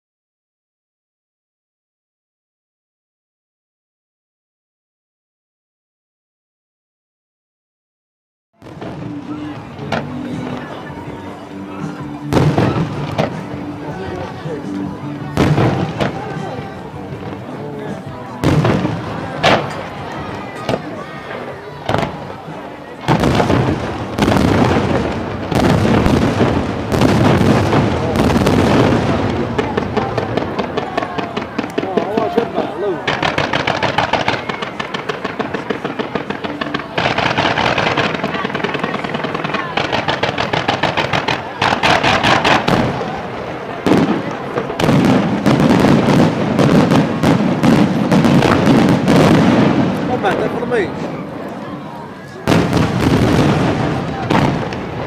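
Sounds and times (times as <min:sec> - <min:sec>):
fireworks bangs and bursts: 0:08.6 - 0:55.0
rapid fireworks volleys: 0:08.6 - 0:55.0.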